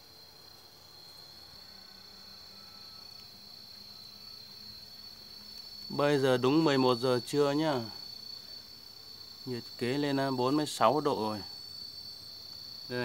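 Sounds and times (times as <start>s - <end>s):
insects droning: 0.0s - 13.0s.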